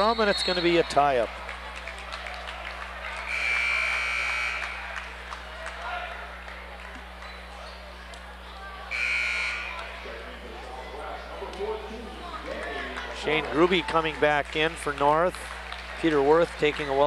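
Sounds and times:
scoreboard buzzer: 0:03.3 - 0:04.8, 0:08.9 - 0:09.9.

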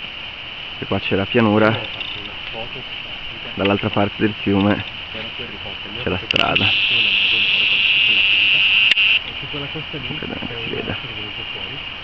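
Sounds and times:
camera zoom motor whining: 0:06.6 - 0:09.2.

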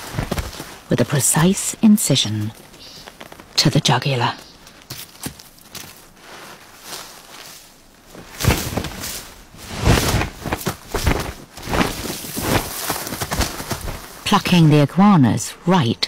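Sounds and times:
bird scrabbling in gravelly soil: 0:02.3 - 0:14.3
wings beating: 0:09.8 - 0:14.2.

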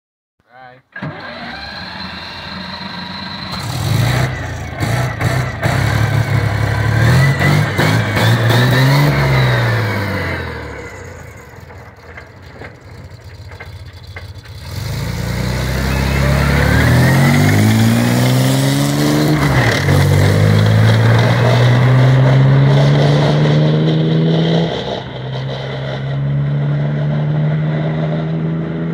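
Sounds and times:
tank engine revving: 0:01.0 - 0:28.9.

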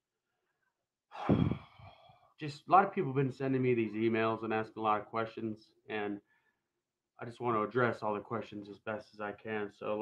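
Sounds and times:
man sighing loudly: 0:01.1 - 0:02.1.

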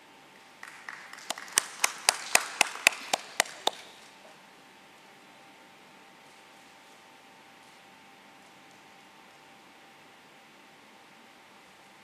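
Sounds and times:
loud hand claps: 0:00.6 - 0:04.2
small group applauding: 0:00.6 - 0:04.2.

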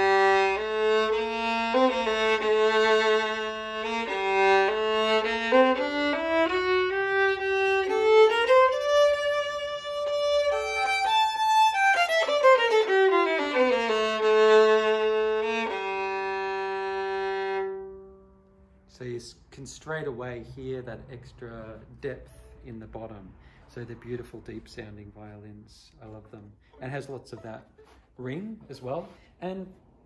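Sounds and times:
bowed violin melody: 0:00.0 - 0:22.9.

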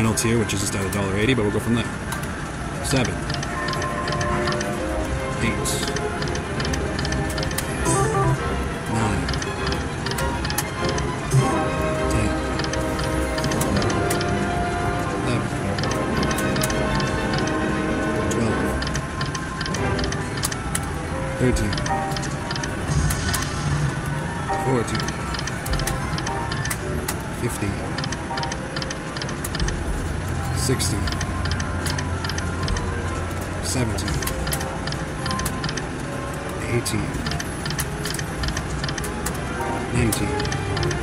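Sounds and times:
slot machine electronic jingles: 0:07.8 - 0:08.8.

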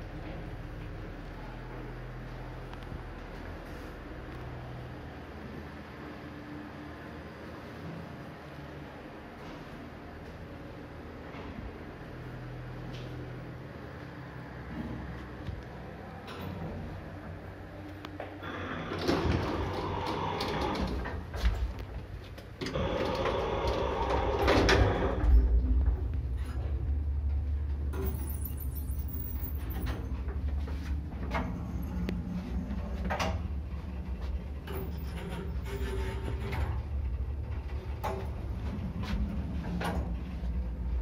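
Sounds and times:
lift car humming: 0:00.0 - 0:41.0
lift doors rattling open and shut: 0:18.4 - 0:41.0.

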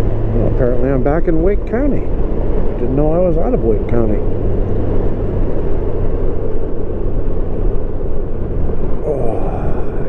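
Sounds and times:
motorcycle engine hum: 0:00.0 - 0:10.0
road rumble: 0:00.0 - 0:10.0
wind rush on microphone: 0:00.0 - 0:10.0.

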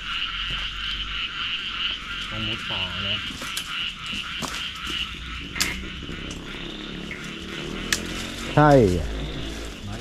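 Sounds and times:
frogs and insects trilling: 0:00.0 - 0:10.0.

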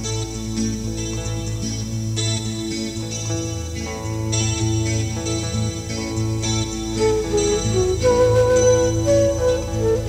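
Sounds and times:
acoustic guitar picking: 0:00.0 - 0:10.0.

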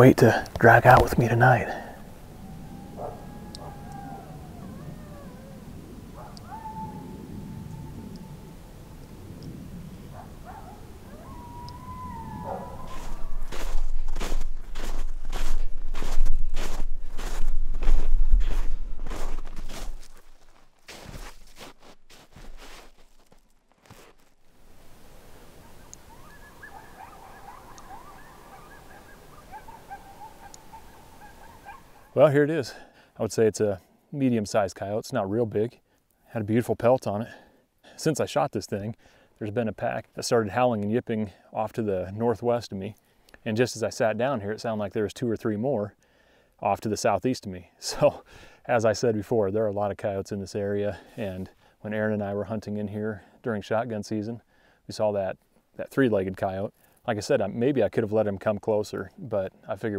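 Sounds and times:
distant coyotes howling and yipping: 0:01.9 - 0:14.0, 0:25.2 - 0:32.2
footsteps crunching through snow: 0:12.4 - 0:25.0.

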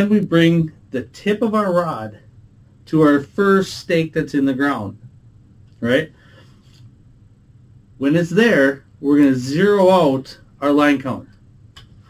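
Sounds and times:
person speaking: 0:00.0 - 0:06.8, 0:08.0 - 0:11.4.

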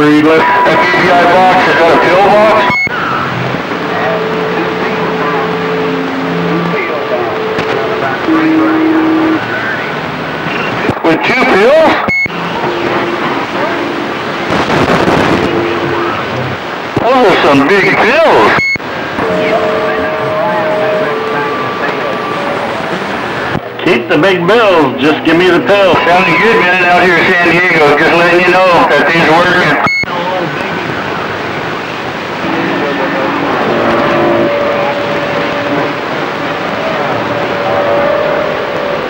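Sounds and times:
faint garbled radio voices: 0:00.0 - 0:39.0
radio static hiss: 0:00.0 - 0:39.0
steady whistling tones: 0:02.3 - 0:10.7, 0:19.2 - 0:23.6, 0:32.2 - 0:39.0.

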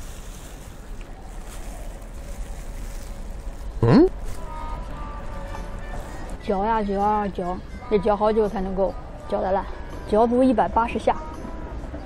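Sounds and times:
woman humming: 0:03.8 - 0:04.2.

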